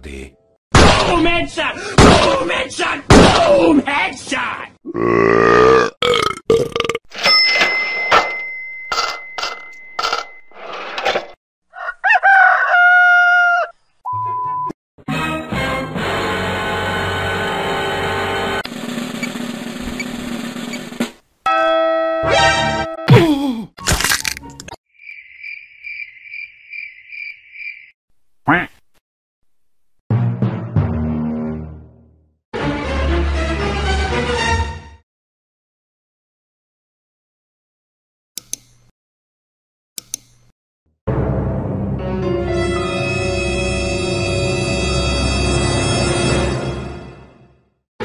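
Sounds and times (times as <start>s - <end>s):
burp effect: 4.9s - 7.0s
bell effect: 7.2s - 10.5s, 21.5s - 23.1s.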